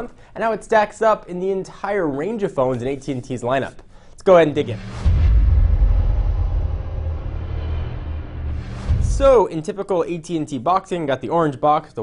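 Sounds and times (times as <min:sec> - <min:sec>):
deep logo intro rumble: 0:04.6 - 0:09.4.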